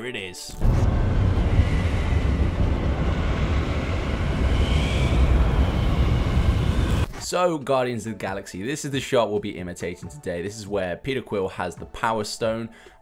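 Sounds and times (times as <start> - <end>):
deep rumble: 0.6 - 7.1
faint high whine: 0.6 - 7.1.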